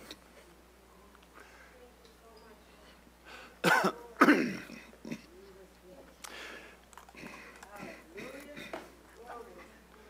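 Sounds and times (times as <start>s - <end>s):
man coughing: 3.6s - 5.3s.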